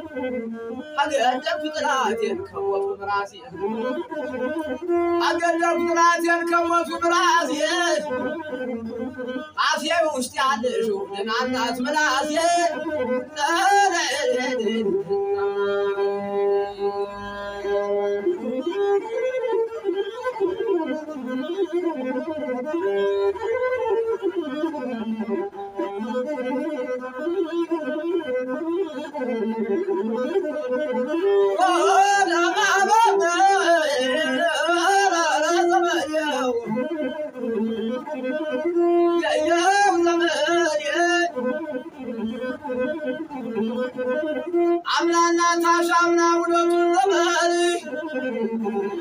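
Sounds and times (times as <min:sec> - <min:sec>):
man singing: 0:00.9 - 0:09.0, 0:09.6 - 0:15.2, 0:31.4 - 0:49.0
bowed one-string lute melody: 0:12.6 - 0:44.8.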